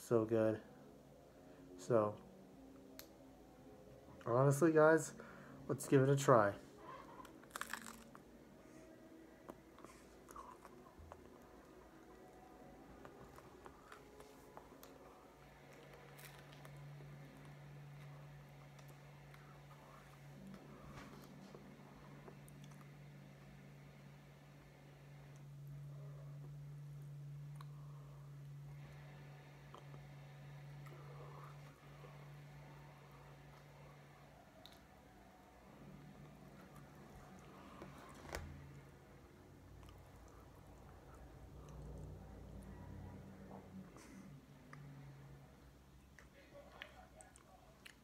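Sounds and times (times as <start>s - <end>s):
steady low hum: 0.0s - 48.0s
quiet chewing: 6.7s - 23.0s, 33.5s - 34.9s, 39.7s - 45.0s, 46.0s - 48.0s
biting into pizza: 7.2s - 8.2s
person chewing: 7.2s - 8.2s, 9.4s - 11.6s.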